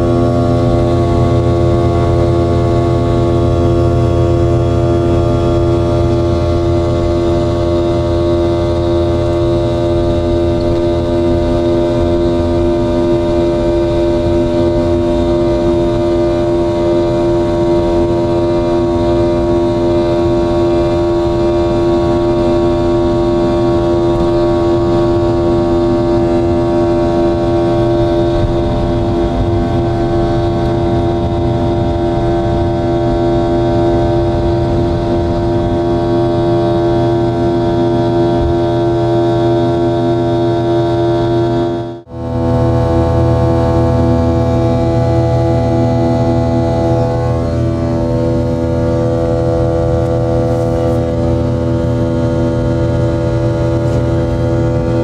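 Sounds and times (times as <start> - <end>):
jet engine droning at high thrust: 0.0 - 55.0.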